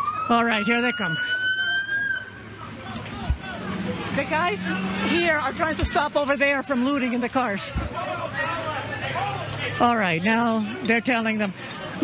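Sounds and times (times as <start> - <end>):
police siren wailing: 0.0 - 7.2.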